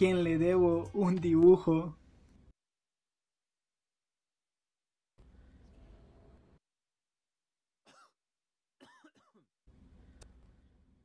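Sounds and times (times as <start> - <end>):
person clearing throat: 7.9 - 8.2, 8.8 - 9.5.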